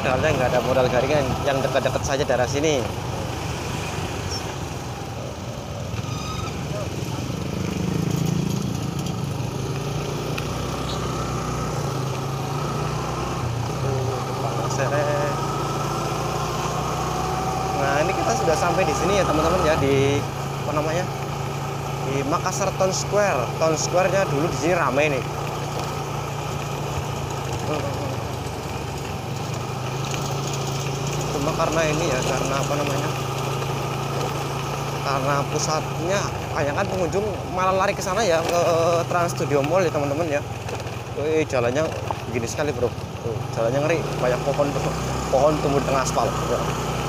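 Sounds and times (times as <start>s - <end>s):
motorcycle engine running: 0.0s - 47.0s
road and wind noise: 0.0s - 47.0s.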